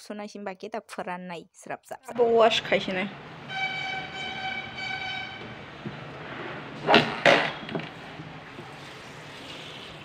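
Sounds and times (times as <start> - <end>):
horn steady high tone: 3.3 - 5.8.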